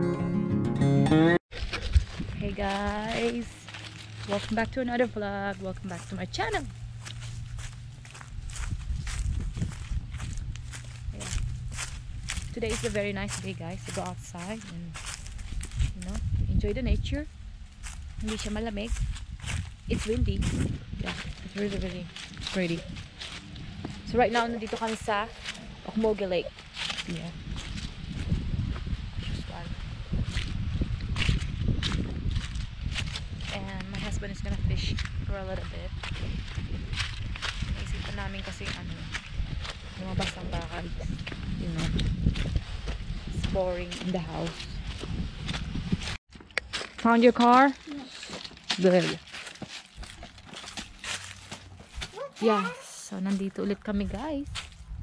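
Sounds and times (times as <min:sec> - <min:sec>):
footsteps crunching on leaves and gravel: 0:01.5 - 0:16.4, 0:17.5 - 0:55.0
wind rumbling on microphone: 0:01.5 - 0:46.2, 0:48.5 - 0:52.2, 0:53.3 - 0:55.0.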